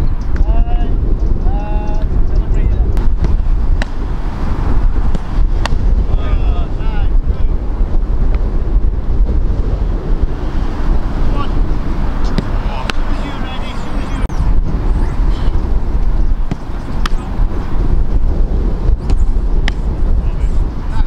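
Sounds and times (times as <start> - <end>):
wind buffeting microphone: 0.0 - 21.0
football being struck: 5.0 - 5.9, 12.2 - 13.0, 16.4 - 17.4.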